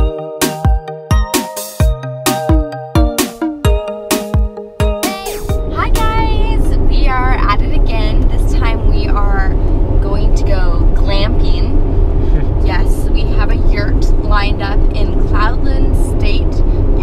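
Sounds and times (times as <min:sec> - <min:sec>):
woman talking: 0:05.0 - 0:11.8, 0:12.6 - 0:16.6
road and tyre rumble: 0:05.4 - 0:17.0.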